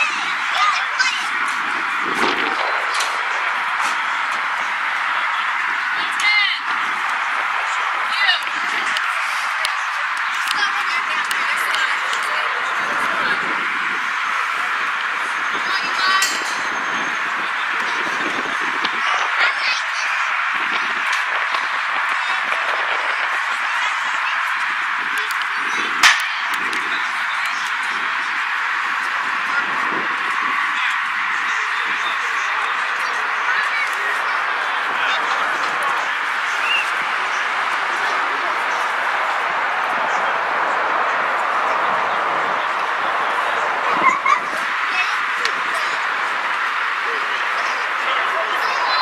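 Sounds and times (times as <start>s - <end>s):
distant indistinct voices: 0.0s - 49.0s
sharp crack: 25.2s - 26.9s.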